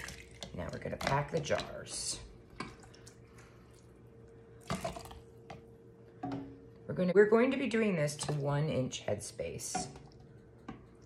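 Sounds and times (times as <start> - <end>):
liquid sloshing in a pot: 0.0 - 6.5, 8.0 - 8.6
faint steady hum: 0.0 - 11.0.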